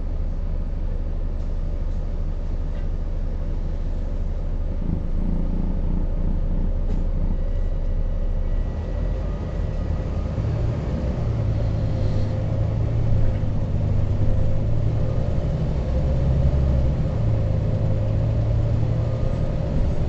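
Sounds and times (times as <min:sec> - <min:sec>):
bus engine and road rumble: 0:00.0 - 0:20.0.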